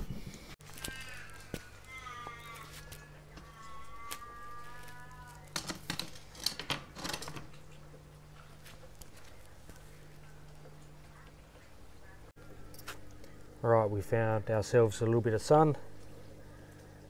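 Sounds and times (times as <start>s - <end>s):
wavering animal calls: 0.7s - 5.4s.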